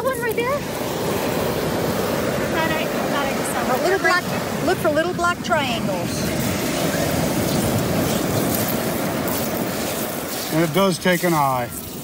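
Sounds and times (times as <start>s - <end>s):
rough surf rushing: 0.0s - 12.0s
wind buffeting microphone: 0.0s - 12.0s.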